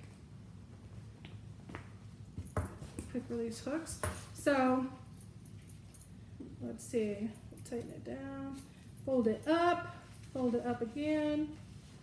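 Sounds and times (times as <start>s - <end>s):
fabric rustling: 9.5s - 12.0s.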